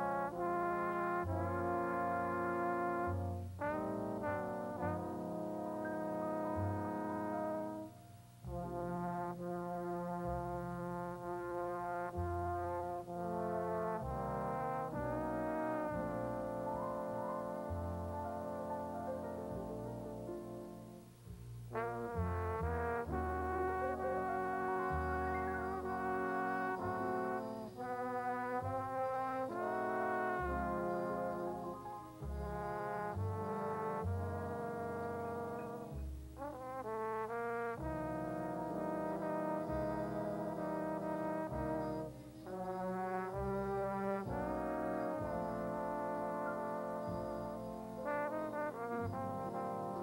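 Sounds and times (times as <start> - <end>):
brass section sustained chords: 0.0 - 50.0
trumpet playing: 0.0 - 50.0.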